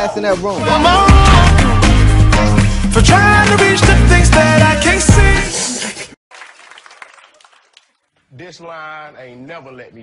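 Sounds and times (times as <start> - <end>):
song: 0.6 - 5.6
studio audience applauding: 3.1 - 4.0, 6.3 - 8.1.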